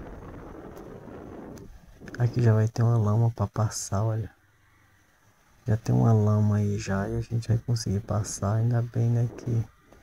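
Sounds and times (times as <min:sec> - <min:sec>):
motorcycle engine rumble: 0:00.0 - 0:03.0
wind buffeting microphone: 0:00.0 - 0:03.7, 0:05.6 - 0:10.0.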